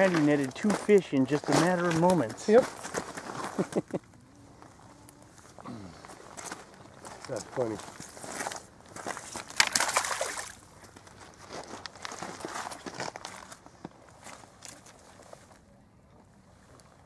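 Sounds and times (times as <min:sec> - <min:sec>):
footsteps on stones: 0:00.0 - 0:04.0
rustling crunching noise: 0:00.0 - 0:15.7
splashing: 0:09.2 - 0:10.7.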